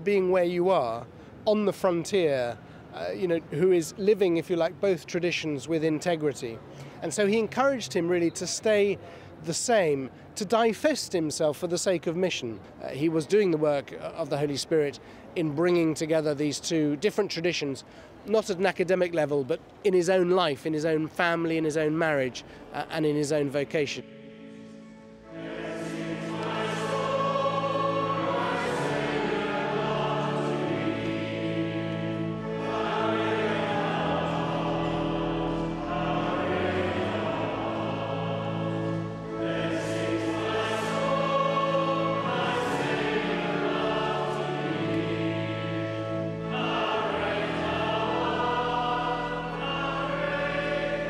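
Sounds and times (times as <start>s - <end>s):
congregation singing a hymn: 23.2s - 51.0s.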